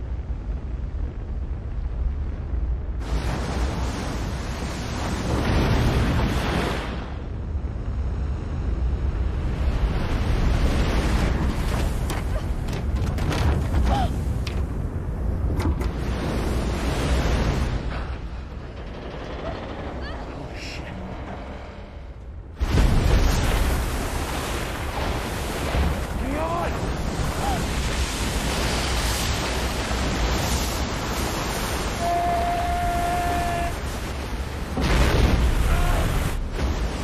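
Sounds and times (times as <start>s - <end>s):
deep rumble of ocean wave: 0.0s - 37.0s.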